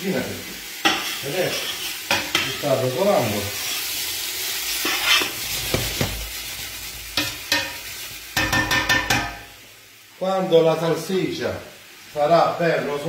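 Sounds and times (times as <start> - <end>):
sausage sizzling in a pot: 0.0 - 13.0
utensil scraping pot: 0.8 - 2.6, 4.7 - 6.2
sharp knocks against pot: 8.4 - 9.4.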